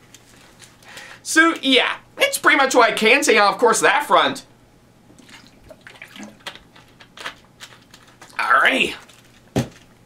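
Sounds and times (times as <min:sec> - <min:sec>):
person gulping water: 0:05.2 - 0:06.5.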